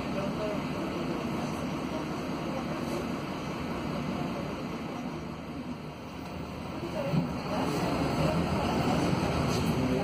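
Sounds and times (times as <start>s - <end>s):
bus engine drone inside cabin: 0.0s - 10.0s.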